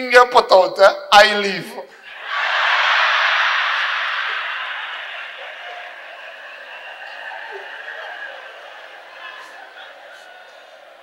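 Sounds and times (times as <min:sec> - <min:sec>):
audience applauding: 0:02.0 - 0:11.0.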